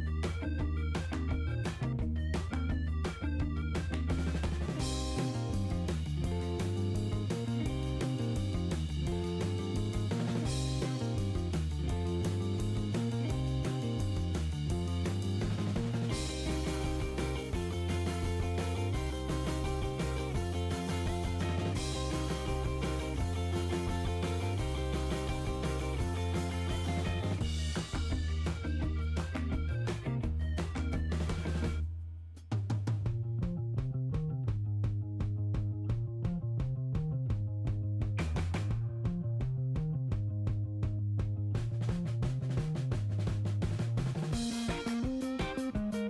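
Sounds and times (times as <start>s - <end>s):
bass line: 0.0s - 46.0s
drum kit beat: 0.0s - 46.0s.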